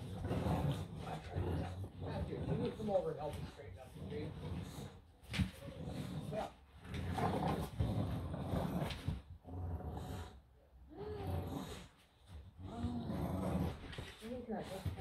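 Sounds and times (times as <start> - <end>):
dogs growling: 0.0 - 15.0.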